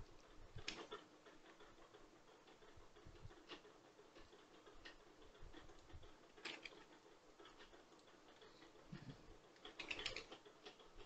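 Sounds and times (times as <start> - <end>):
keyboard and mouse clicks: 9.6 - 10.4.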